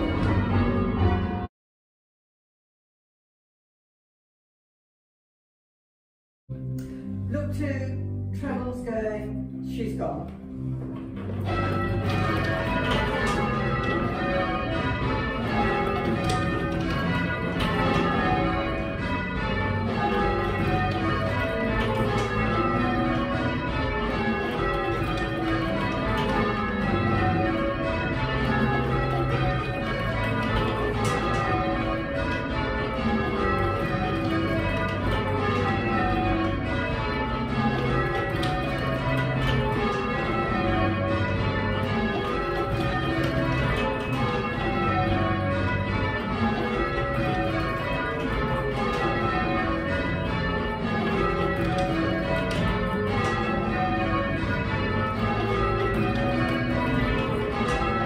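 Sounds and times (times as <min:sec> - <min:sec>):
church bells change ringing: 0:00.0 - 0:01.5, 0:06.5 - 0:58.0.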